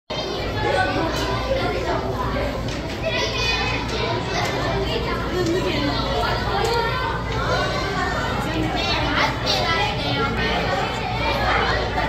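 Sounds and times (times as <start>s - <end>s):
children's voices: 0.1s - 12.0s
crowd chatter: 0.1s - 12.0s.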